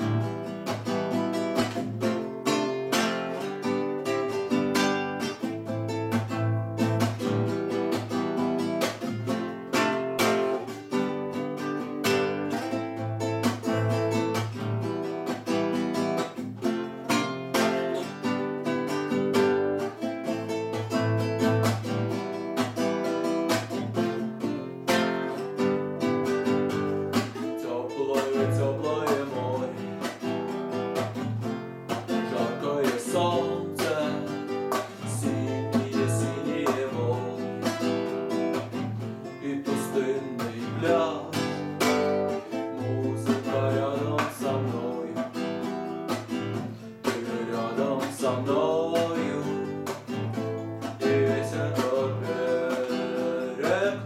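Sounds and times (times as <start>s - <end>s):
classical guitar strumming: 0.0s - 54.0s
man singing: 27.4s - 30.3s, 31.9s - 54.0s.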